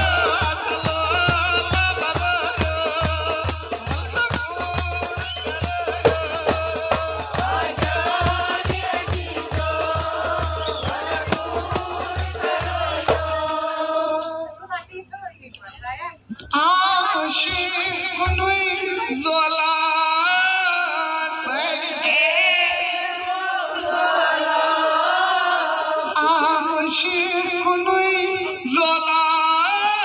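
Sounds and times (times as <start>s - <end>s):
handheld rattle shaking: 0.0s - 13.4s, 14.1s - 16.0s
goblet drums beaten fast: 0.0s - 14.2s.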